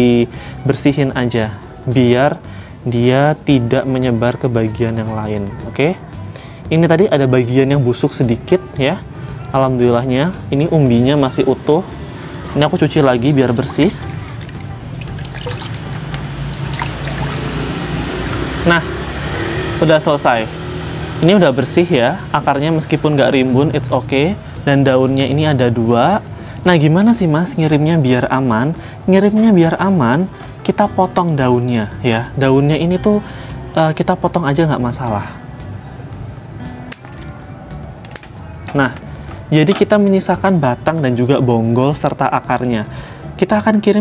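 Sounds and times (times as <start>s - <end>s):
water splashing in a bucket: 13.4s - 19.0s.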